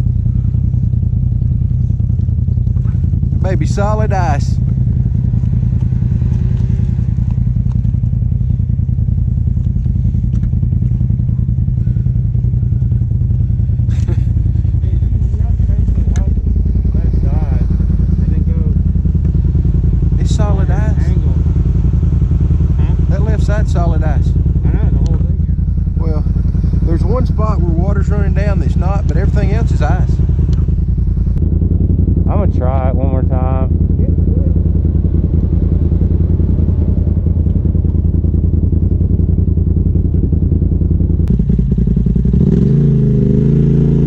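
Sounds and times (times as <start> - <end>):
vehicle engine droning: 0.0 - 44.0.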